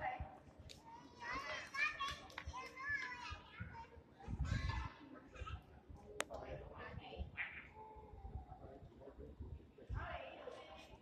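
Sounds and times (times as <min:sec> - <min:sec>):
children calling out and chattering: 0:00.7 - 0:05.8.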